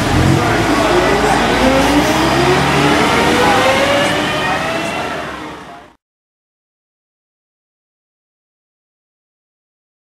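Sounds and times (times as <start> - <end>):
diesel bus accelerating: 0.0 - 6.0.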